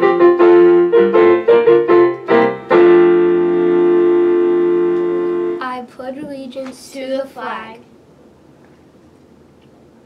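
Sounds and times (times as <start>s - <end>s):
piano chords: 0.0s - 5.9s.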